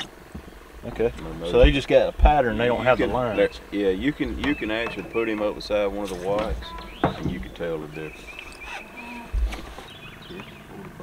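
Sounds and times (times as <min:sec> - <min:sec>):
dull low thump: 0:00.3 - 0:05.6, 0:06.3 - 0:07.9, 0:09.2 - 0:09.7.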